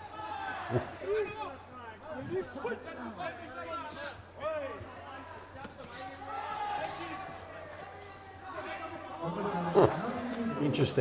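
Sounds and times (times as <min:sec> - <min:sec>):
crowd shouting: 0:00.0 - 0:02.1, 0:05.9 - 0:10.9.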